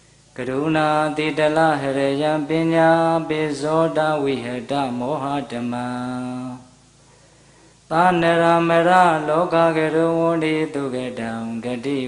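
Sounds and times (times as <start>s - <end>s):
man chanting into a microphone: 0.4s - 6.7s, 7.9s - 12.0s.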